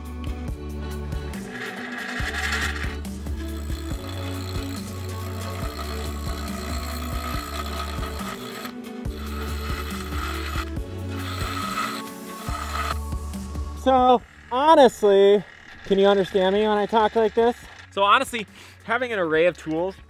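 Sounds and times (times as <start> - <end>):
background music with bass line: 0.0 - 14.6
bench grinder grinding ceramic: 1.2 - 19.7.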